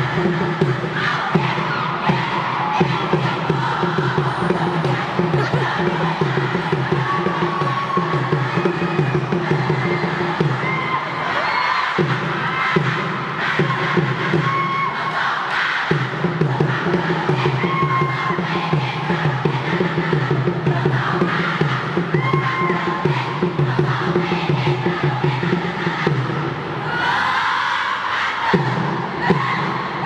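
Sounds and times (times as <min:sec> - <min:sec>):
rhythmic beat: 0:00.0 - 0:10.7
group chanting a cheer: 0:00.0 - 0:30.0.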